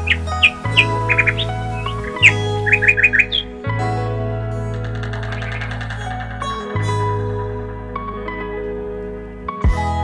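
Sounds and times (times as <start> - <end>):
bird chirps: 0.0 - 3.6, 5.0 - 6.3
background music of sustained chords: 0.0 - 10.0.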